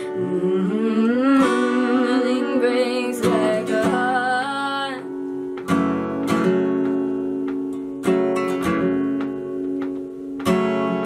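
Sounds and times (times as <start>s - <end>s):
woman singing: 0.0s - 5.4s
acoustic guitar strum: 1.4s - 11.0s.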